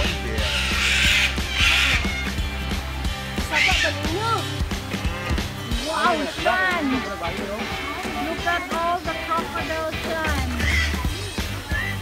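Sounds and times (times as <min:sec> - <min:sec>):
hornbill cawing calls: 0:00.0 - 0:08.7, 0:10.0 - 0:12.0
music with beat and bass: 0:00.0 - 0:12.0.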